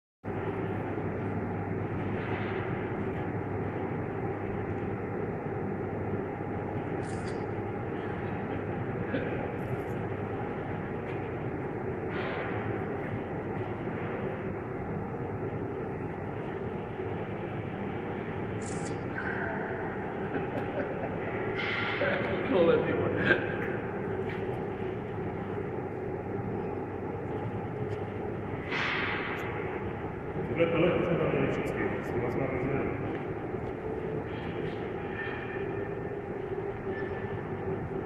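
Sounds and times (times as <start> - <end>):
mechanical hum: 0.2 - 38.0.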